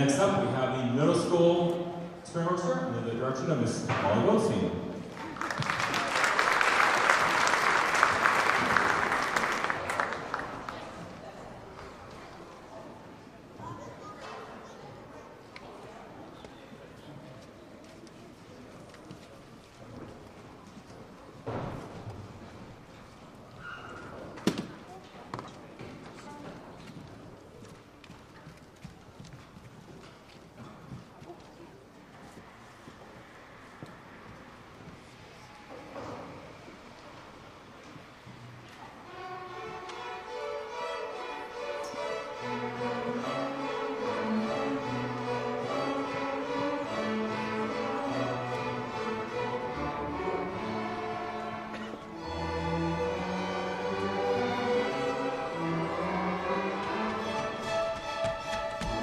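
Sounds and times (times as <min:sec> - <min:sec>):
audience murmur and shuffling: 0:00.0 - 0:59.0
string orchestra sustained notes: 0:38.9 - 0:59.0.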